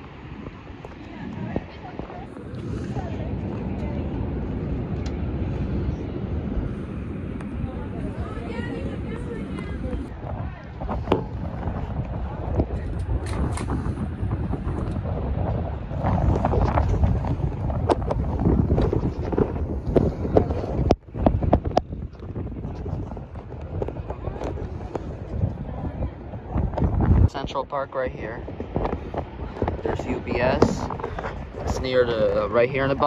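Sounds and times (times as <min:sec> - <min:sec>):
wind rumbling on microphone: 0:00.0 - 0:33.0.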